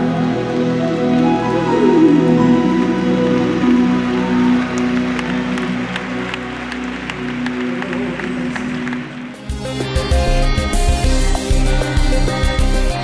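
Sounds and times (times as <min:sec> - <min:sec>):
gospel band sustained chords: 0:00.0 - 0:13.0
sharp hand claps: 0:04.6 - 0:09.6.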